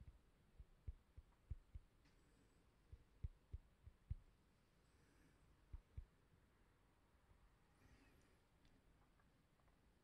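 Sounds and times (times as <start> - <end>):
faint low thumps: 0.0 - 2.1, 2.9 - 4.3, 5.7 - 6.2.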